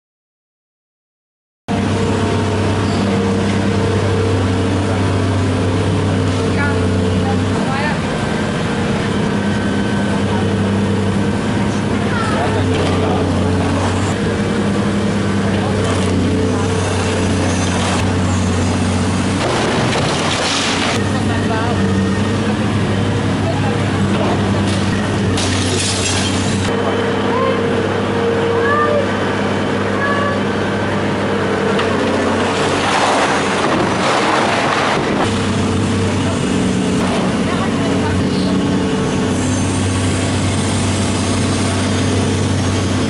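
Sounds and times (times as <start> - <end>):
excavator diesel engine running: 1.7 - 43.0.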